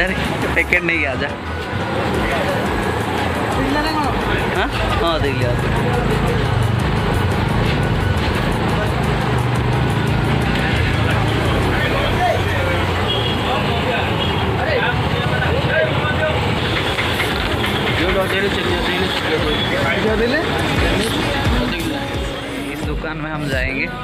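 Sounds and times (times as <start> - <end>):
background voices and chatter: 0.0 - 24.0
music playing: 0.0 - 24.0
passing road traffic: 0.0 - 24.0.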